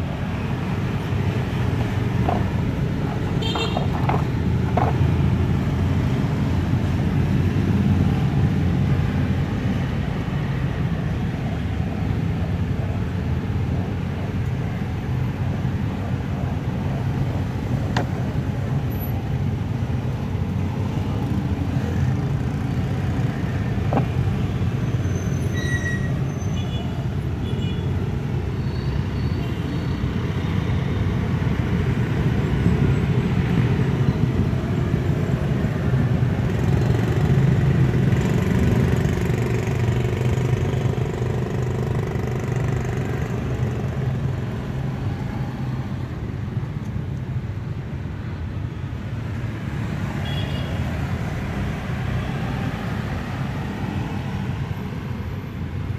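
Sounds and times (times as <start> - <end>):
road traffic rumble: 0.0 - 55.9.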